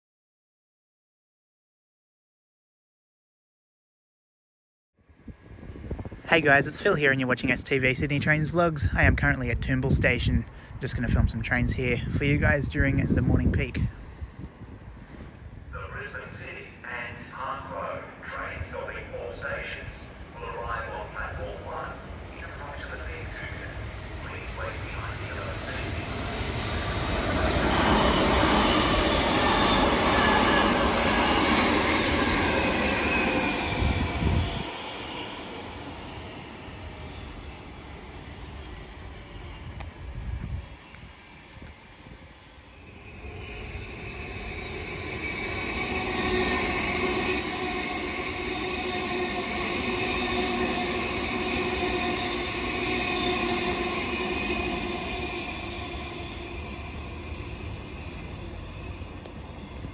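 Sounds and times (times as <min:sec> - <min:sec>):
electric train whine: 0:05.0 - 0:59.9
train running in: 0:05.1 - 0:59.9
train wheel squeal: 0:25.4 - 0:59.9.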